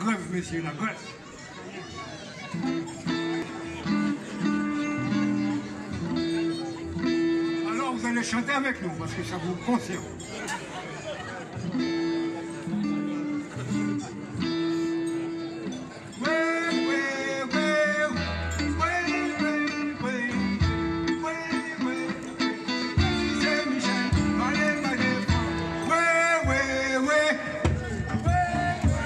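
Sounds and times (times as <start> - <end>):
bass guitar line: 2.9 - 7.7, 11.7 - 29.0
percussion: 11.5 - 29.0
electric guitar: 11.6 - 29.0
higher melody line: 11.8 - 29.0.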